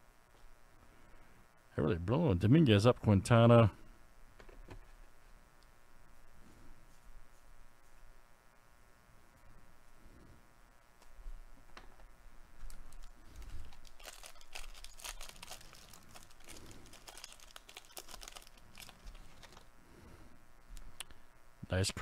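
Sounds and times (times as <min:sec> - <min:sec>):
cards rustling: 0:12.6 - 0:19.7
plastic wrapper crinkling and tearing: 0:12.7 - 0:19.7.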